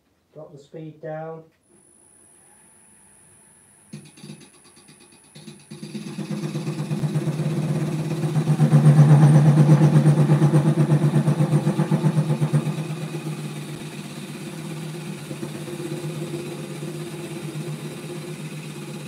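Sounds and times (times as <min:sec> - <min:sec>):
wood lathe spinning: 0:03.9 - 0:19.0.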